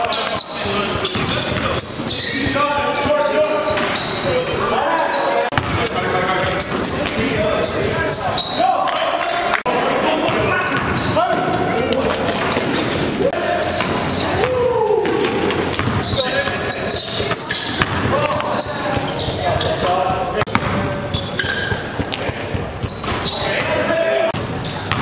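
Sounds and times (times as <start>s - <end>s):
basketball bouncing on court: 0.0s - 4.1s, 5.5s - 7.3s, 13.6s - 23.7s, 24.4s - 25.0s
players calling out: 0.0s - 25.0s.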